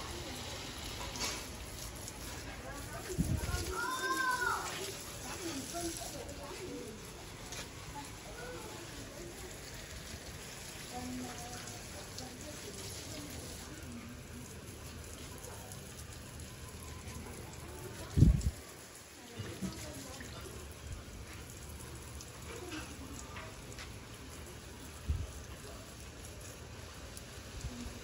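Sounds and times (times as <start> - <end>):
hose nozzle spraying water: 0.0 - 13.9.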